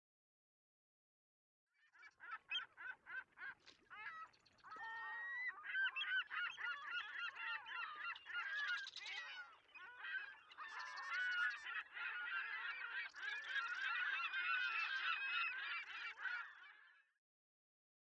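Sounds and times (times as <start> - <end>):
flock of birds calling: 2.0 - 17.1.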